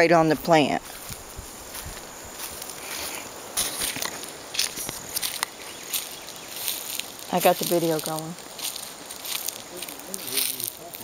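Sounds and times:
footsteps through dry leaves: 0.8 - 11.0.

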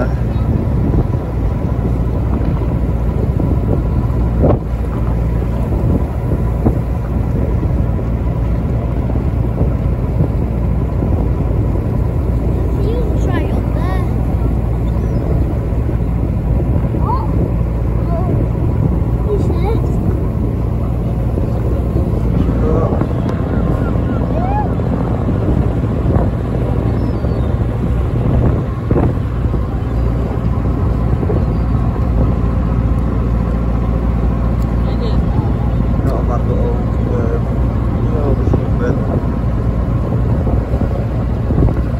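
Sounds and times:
boat engine humming: 0.0 - 41.9
open-air noise: 0.0 - 41.9.

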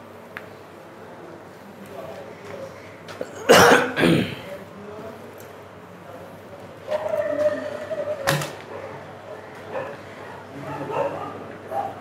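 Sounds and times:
man coughing: 3.2 - 4.5.

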